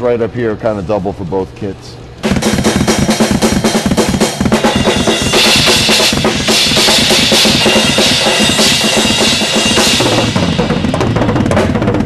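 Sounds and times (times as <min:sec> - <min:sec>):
cymbals wash: 0:02.2 - 0:11.0
bass drum strokes: 0:02.2 - 0:12.0
snare and tom hits: 0:02.2 - 0:12.0.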